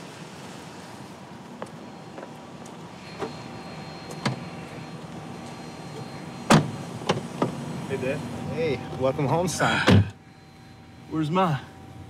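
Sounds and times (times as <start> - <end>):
car door shutting with thud: 6.4 - 7.6, 9.8 - 10.2.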